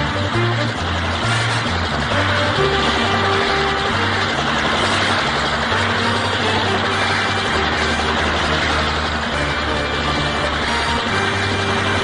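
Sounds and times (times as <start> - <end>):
background music with bass line: 0.0 - 4.8
vehicle engine: 0.0 - 12.0.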